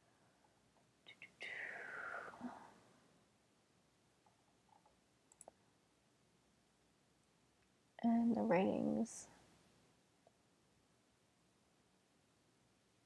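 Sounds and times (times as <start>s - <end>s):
soft breathy vocal sound: 1.1s - 3.1s
computer mouse clicks: 4.2s - 5.6s.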